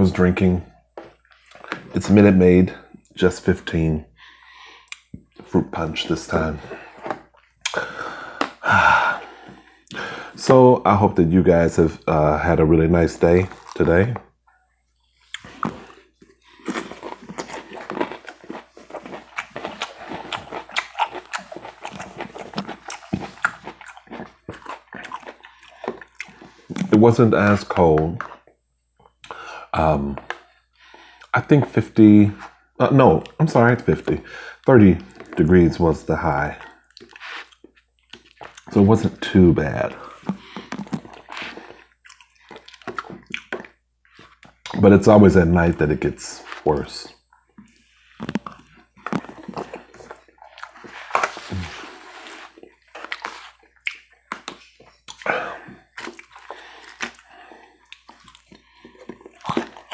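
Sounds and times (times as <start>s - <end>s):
crunchy salad being chewed: 15.2s - 27.0s, 36.5s - 44.8s, 46.4s - 59.9s.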